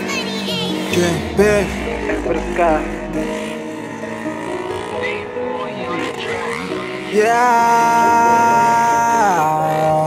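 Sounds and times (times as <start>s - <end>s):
dirt bike engines revving: 0.0s - 10.0s
background voices: 0.7s - 3.7s.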